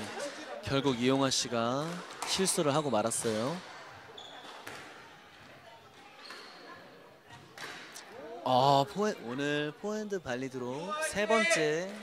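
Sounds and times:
squash rally on wooden court: 0:01.6 - 0:09.3, 0:10.7 - 0:12.0
shoe squeak: 0:02.6 - 0:04.8, 0:06.2 - 0:07.4.

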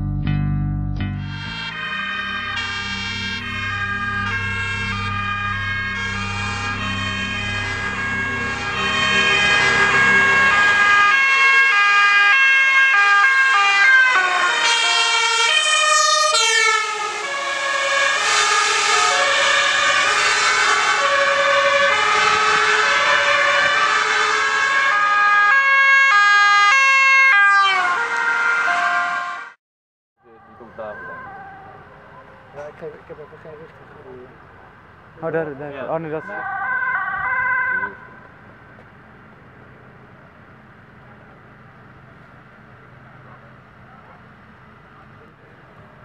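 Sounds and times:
music with bass beat: 0:00.0 - 0:01.8
two-tone sirens: 0:01.2 - 0:29.6, 0:30.2 - 0:46.0.

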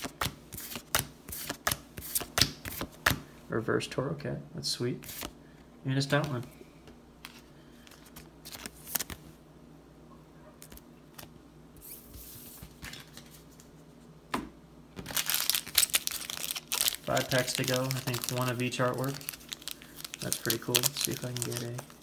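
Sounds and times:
foil wrappers crinkling: 0:15.0 - 0:22.0.

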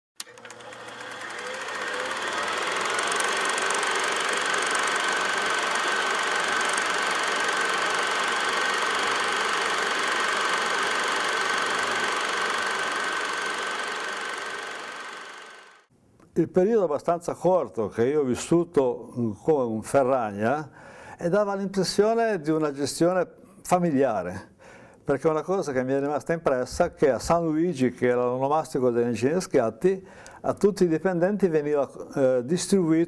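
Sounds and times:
machine running with high whine: 0:00.2 - 0:15.9.

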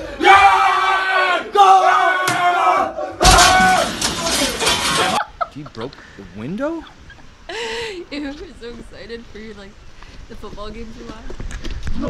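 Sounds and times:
men shouting: 0:00.0 - 0:05.2.

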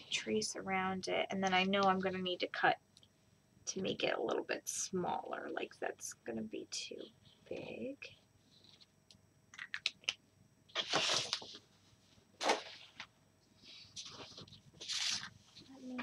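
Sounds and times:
paper rustling: 0:10.7 - 0:11.6, 0:12.4 - 0:16.0.

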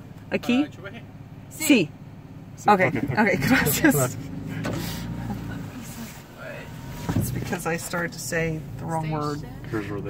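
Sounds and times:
car engine running low: 0:00.0 - 0:10.0.

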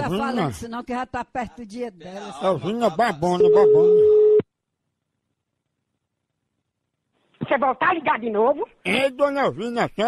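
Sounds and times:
steady telephone tone: 0:03.4 - 0:04.4.

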